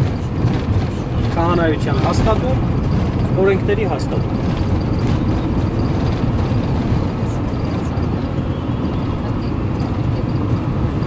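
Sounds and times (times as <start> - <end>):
vehicle engine and tyres rumbling: 0.0 - 11.0.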